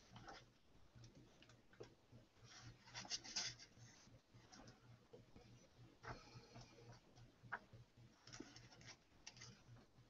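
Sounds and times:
faint clicks and rustles: 0.0 - 10.0
faint low hum: 0.0 - 10.0.

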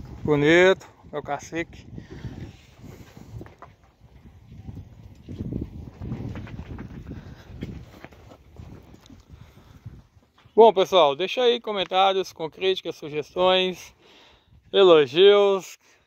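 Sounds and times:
cattle hooves thudding on sand: 2.5 - 10.4.

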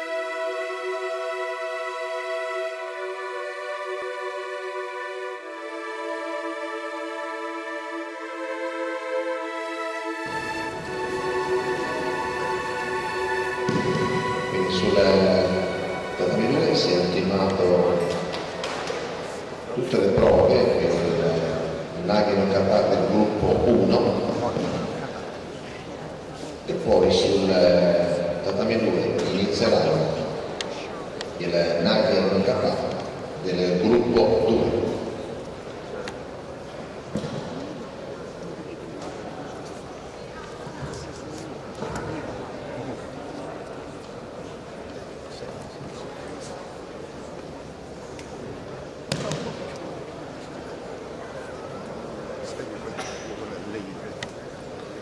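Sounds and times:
indoor sports hall background noise: 0.0 - 55.0
man making announcement: 11.0 - 18.4, 19.3 - 25.2, 26.6 - 36.2, 52.4 - 55.0.

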